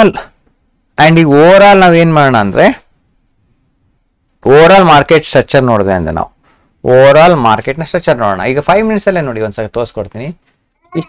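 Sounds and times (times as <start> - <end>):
man talking: 1.0 - 2.9, 4.4 - 11.0.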